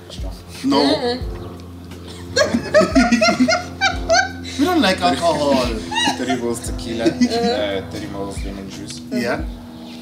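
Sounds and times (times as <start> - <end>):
people laughing: 2.1 - 8.7.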